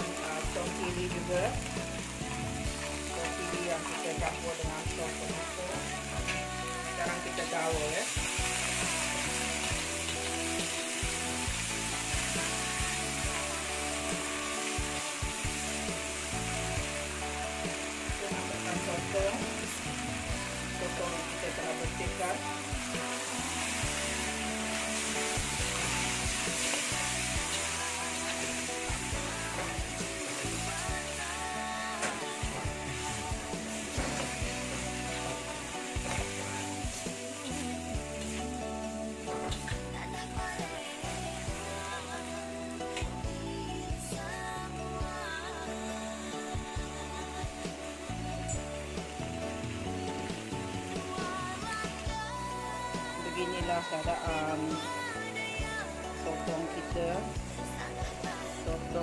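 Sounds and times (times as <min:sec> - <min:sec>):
squid frying in sauce: 0:00.0 - 0:43.4
background music: 0:00.0 - 0:59.0
chili paste sizzling in a wok: 0:00.0 - 0:59.0.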